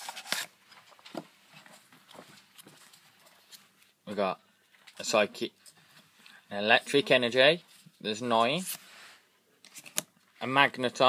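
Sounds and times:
cards tapping and rustling: 9.6s - 10.1s.

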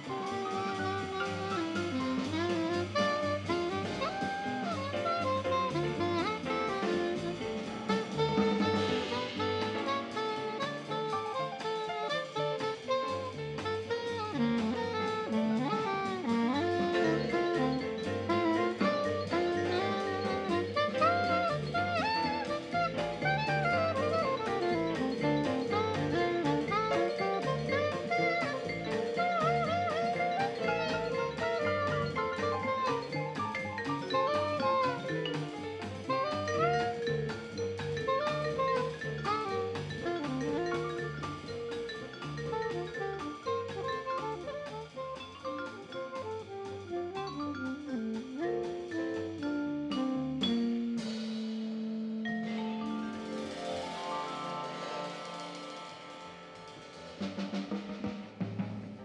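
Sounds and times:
upright bass: 0.0s - 52.5s
soprano saxophone: 0.0s - 53.6s
drums: 0.0s - 59.0s
piano: 0.0s - 59.0s
vibraphone: 16.3s - 51.5s, 52.2s - 57.5s.

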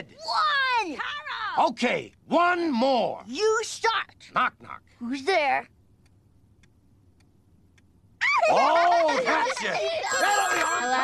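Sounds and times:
faint ticks: 6.0s - 7.9s.

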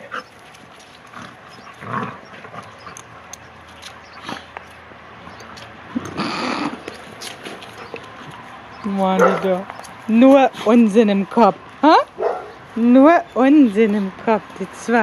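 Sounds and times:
dogs growling: 0.0s - 10.8s
dogs scuffling: 0.0s - 15.0s.

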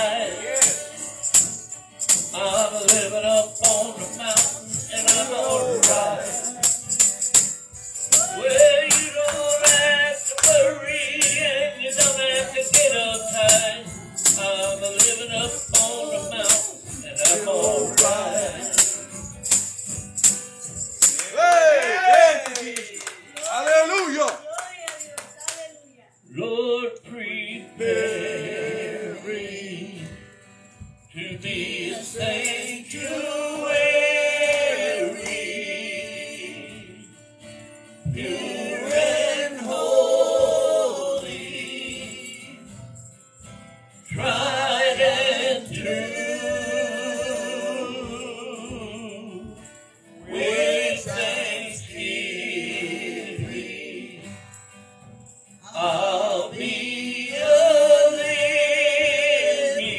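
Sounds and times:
man singing into a microphone: 0.0s - 1.0s, 2.3s - 6.6s, 8.2s - 19.1s, 26.3s - 28.2s, 44.1s - 49.6s, 55.7s - 59.9s
acoustic guitar: 0.0s - 59.9s
hands clapping: 4.4s - 10.8s, 18.8s - 25.8s, 34.5s - 35.6s.

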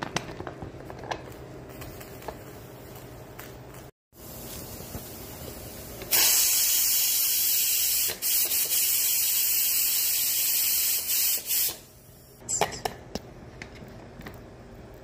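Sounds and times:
pressure cooker steam hissing: 4.2s - 11.9s.

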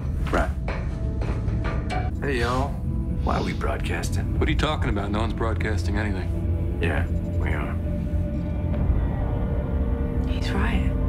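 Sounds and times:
drama background music drone: 0.0s - 11.0s.

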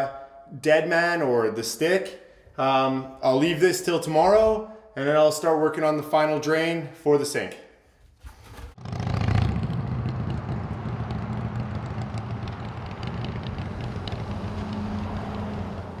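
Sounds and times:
road traffic noise: 8.8s - 16.0s
vehicle engine running: 8.8s - 16.0s.

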